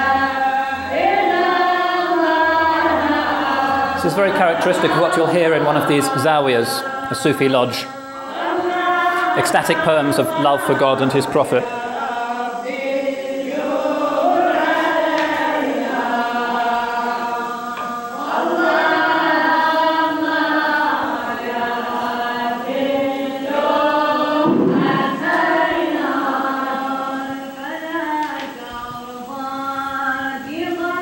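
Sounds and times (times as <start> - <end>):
devotional chant from a stereo: 0.0 - 31.0.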